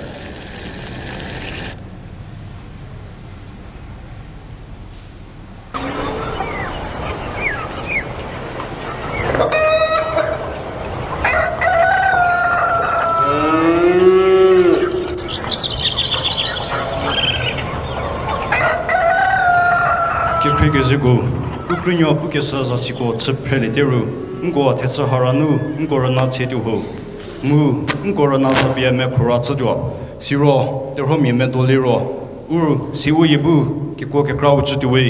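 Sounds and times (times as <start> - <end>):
rooster crowing call: 5.8 - 22.3
fowl squawking: 5.8 - 27.4.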